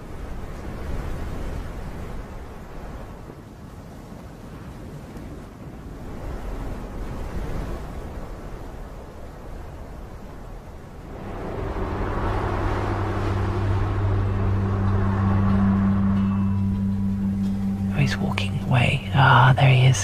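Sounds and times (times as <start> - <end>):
steady wind-like hiss: 5.8 - 20.0
background music with low drone: 11.0 - 20.0.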